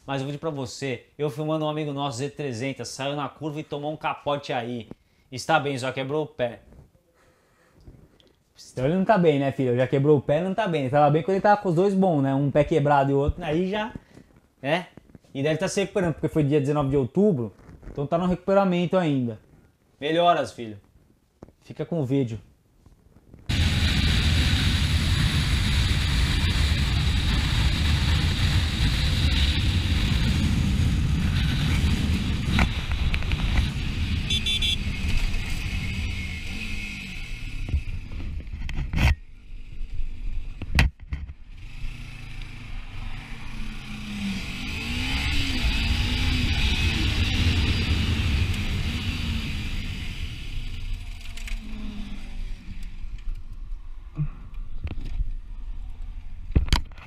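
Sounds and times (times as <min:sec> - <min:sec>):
wind rush: 0:23.5 - 0:36.4
motorcycle engine: 0:23.5 - 0:53.4.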